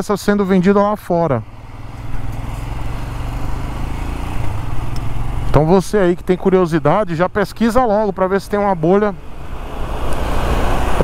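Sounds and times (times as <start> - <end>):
motorcycle engine running: 0.1 - 11.0.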